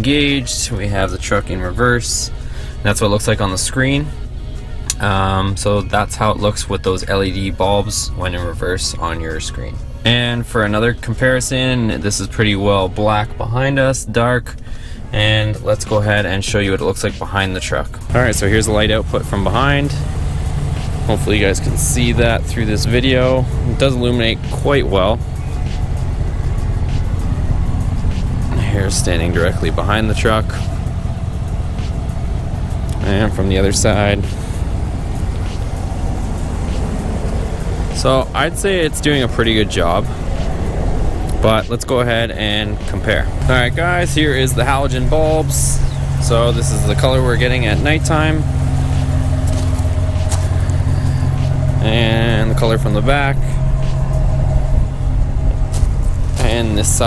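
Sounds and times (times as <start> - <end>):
truck engine idling: 0.0 - 57.0.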